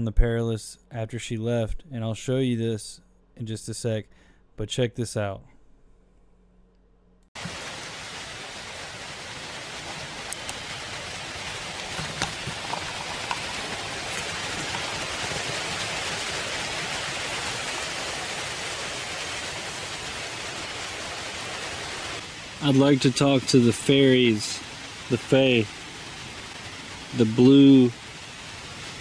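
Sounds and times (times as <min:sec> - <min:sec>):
strong wind through woods: 0:07.4 - 0:29.0.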